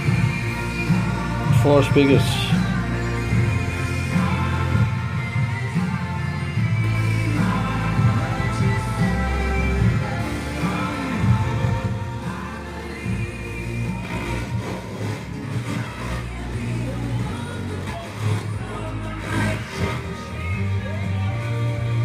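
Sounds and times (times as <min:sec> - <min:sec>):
music with singing over loudspeakers: 0:00.0 - 0:22.0.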